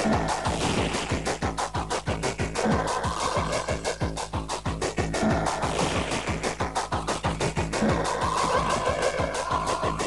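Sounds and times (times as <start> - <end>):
fast kick drums: 0.0 - 10.0.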